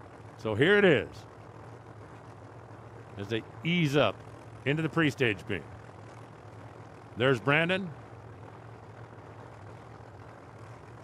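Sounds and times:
race car engines idling: 2.5s - 9.3s.

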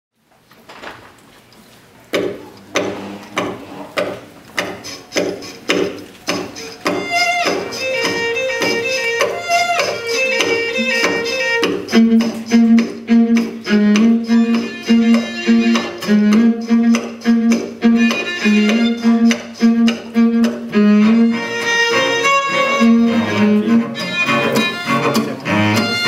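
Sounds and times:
sharp percussive string strokes: 2.8s - 26.0s
string quartet playing: 6.6s - 26.0s
sustained bowed notes: 7.8s - 26.0s.

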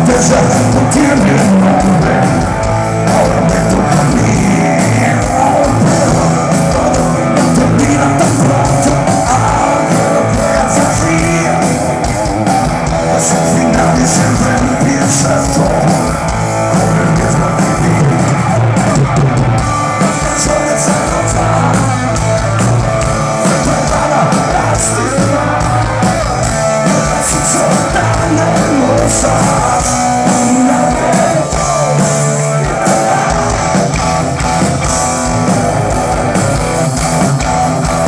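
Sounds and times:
drum kit: 0.0s - 38.0s
electric guitar: 0.0s - 38.0s.

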